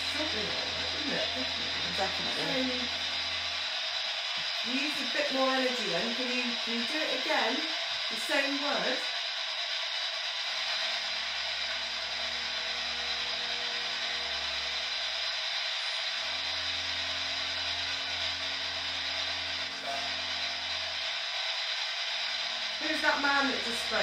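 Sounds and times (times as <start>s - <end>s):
low musical drone: 0.0s - 3.6s, 17.0s - 21.0s.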